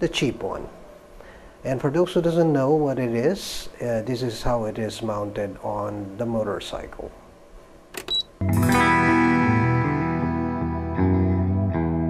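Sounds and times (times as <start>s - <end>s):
guitar background music: 8.4s - 12.0s.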